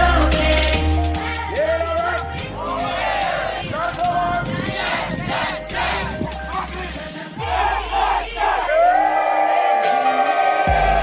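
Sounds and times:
music: 0:00.0 - 0:11.0
crowd shouting and cheering: 0:01.1 - 0:11.0.

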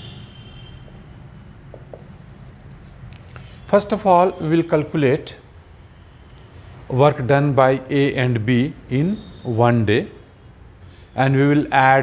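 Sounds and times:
marker writing on a whiteboard: 0:00.0 - 0:03.0.

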